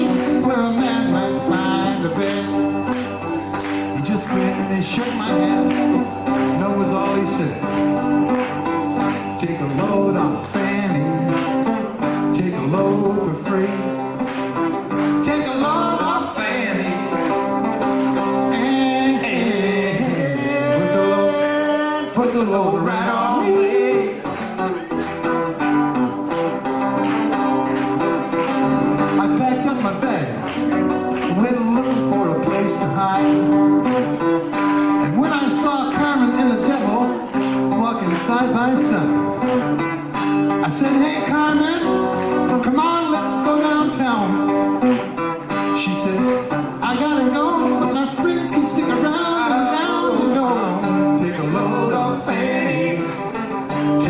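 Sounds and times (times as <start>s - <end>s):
acoustic guitars strummed and picked: 0.0s - 54.0s.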